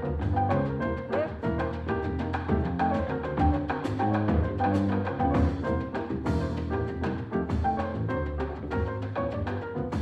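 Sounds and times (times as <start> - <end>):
bass line: 0.0 - 10.0
piano chords and runs: 0.0 - 10.0.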